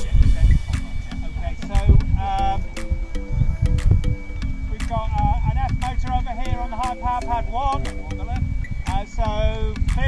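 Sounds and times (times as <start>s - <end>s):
people talking: 0.0s - 10.0s
wind on microphone: 0.0s - 10.0s.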